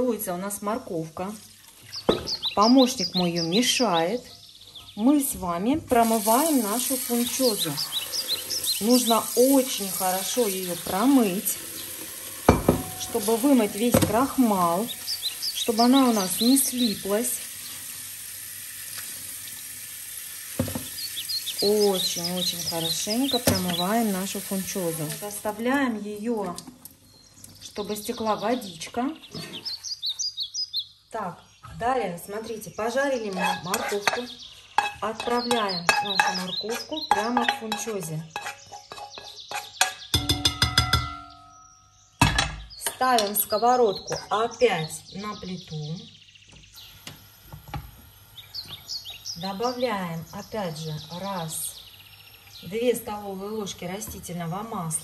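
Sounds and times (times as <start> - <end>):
faint bird chirping: 1.4 - 5.8, 7.0 - 12.0, 12.8 - 17.8, 20.8 - 25.1, 27.0 - 55.0
tap water running: 1.5 - 3.0, 5.9 - 27.0, 46.8 - 49.0.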